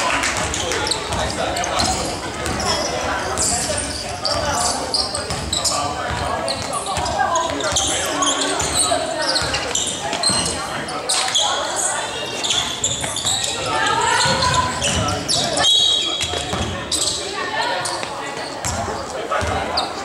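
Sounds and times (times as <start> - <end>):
people shouting in gymnasium: 0.0 - 20.0.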